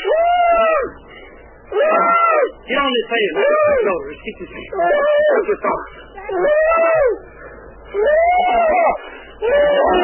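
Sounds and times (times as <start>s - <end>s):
person wailing: 8.0s - 10.0s.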